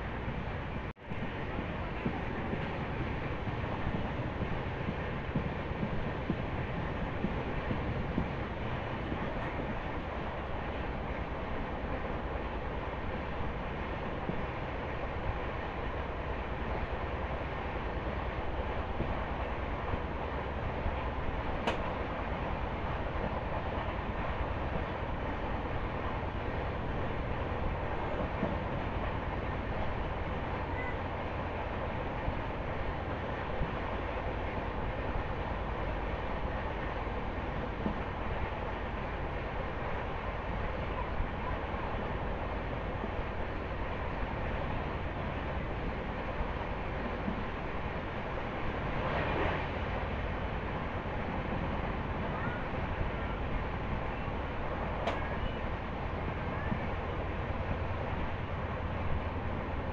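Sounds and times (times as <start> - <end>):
train wheels rumbling on rails: 0.0 - 59.9.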